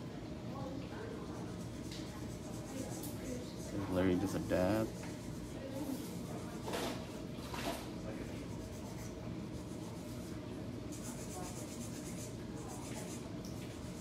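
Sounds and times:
brush scratching on nail: 1.2 - 7.2, 8.3 - 14.0.

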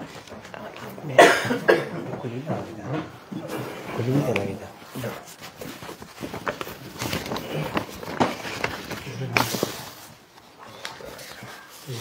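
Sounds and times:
low voices talking: 0.1 - 5.6
person coughing: 1.1 - 2.1.

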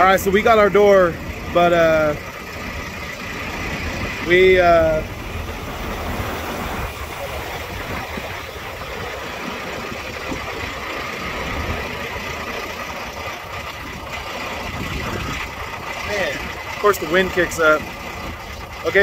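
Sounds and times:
diesel truck engine idling: 0.0 - 19.0
wind buffeting microphone: 2.6 - 18.8.

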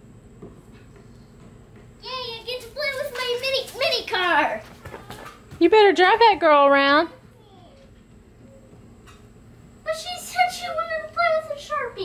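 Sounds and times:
faint steady hum: 0.0 - 12.0
young child talking: 2.0 - 5.3, 7.2 - 7.9, 9.9 - 12.0.

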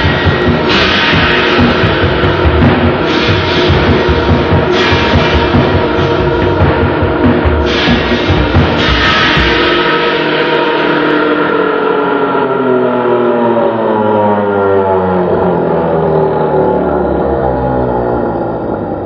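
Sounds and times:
drum kit crash: 0.0 - 12.1
slowed cymbal ringing drone: 0.0 - 19.0.

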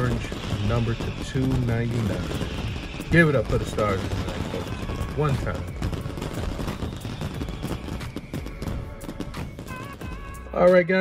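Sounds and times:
fireworks bangs and crackles: 0.0 - 11.0
background music: 1.9 - 11.0.

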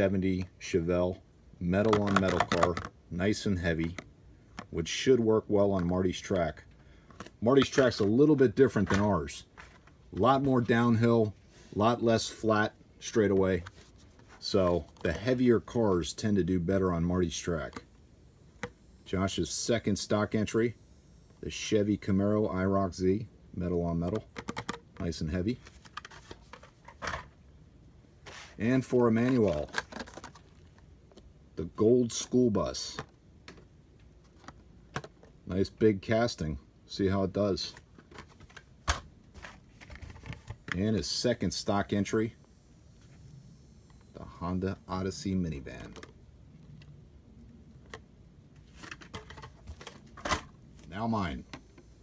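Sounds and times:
packaging rustle: 28.3 - 30.8.

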